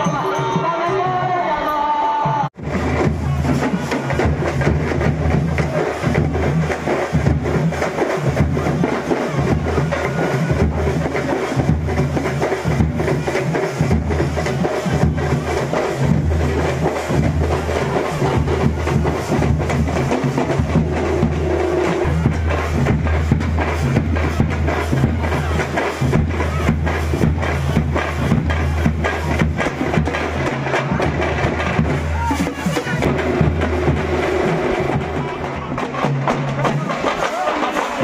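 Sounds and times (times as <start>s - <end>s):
rapid drum percussion: 0.0s - 38.0s
booming bass drum: 2.6s - 37.5s.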